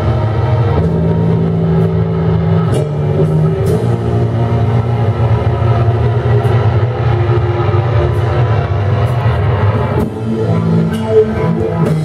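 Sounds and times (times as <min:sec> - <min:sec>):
metal band playing live: 0:00.0 - 0:12.0.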